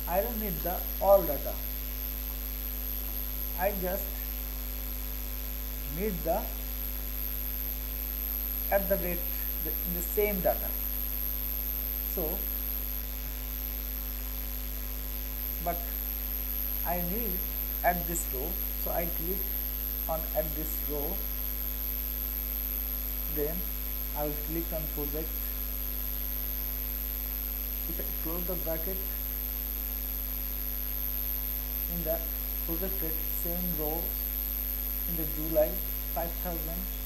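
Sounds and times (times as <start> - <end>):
person speaking: 0.0 - 1.6, 3.6 - 4.2, 5.9 - 6.6, 8.7 - 10.8, 12.1 - 12.4, 15.6 - 16.0, 16.8 - 19.5, 20.1 - 21.2, 23.3 - 23.6, 24.2 - 25.4, 27.9 - 29.2, 31.9 - 34.3, 35.1 - 37.0
faint hiss: 0.0 - 1.8, 3.0 - 4.7, 5.9 - 6.7, 7.3 - 13.4, 14.8 - 22.6, 23.2 - 26.4, 27.1 - 37.0
electrical mains hum: 0.0 - 37.0
faint high whine: 0.0 - 37.0
person speaking a word: 3.6 - 4.2, 23.3 - 23.6, 24.2 - 25.3, 27.9 - 29.1, 31.9 - 34.2, 35.1 - 37.0.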